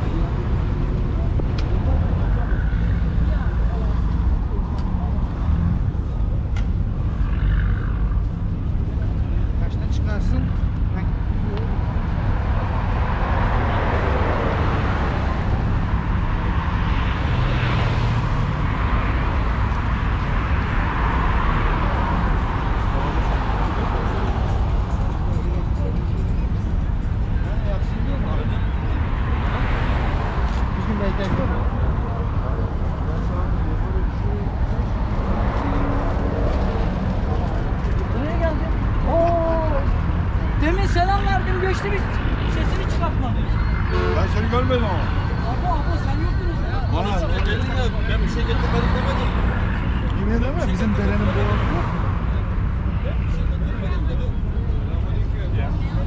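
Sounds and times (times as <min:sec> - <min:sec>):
road traffic rumble: 0:00.0 - 0:56.0
voices of passers-by: 0:00.0 - 0:56.0.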